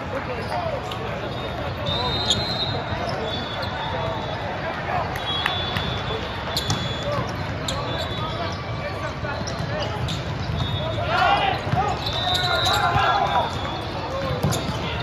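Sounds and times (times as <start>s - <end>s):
sneakers squeaking on court floor: 0.0s - 4.4s, 5.6s - 15.0s
din of voices and balls: 0.0s - 15.0s
players shouting calls: 0.3s - 15.0s.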